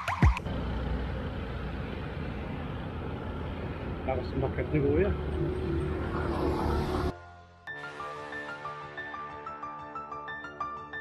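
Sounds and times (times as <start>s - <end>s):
road rumble: 0.0s - 7.2s
passing traffic engine hum: 0.4s - 7.2s.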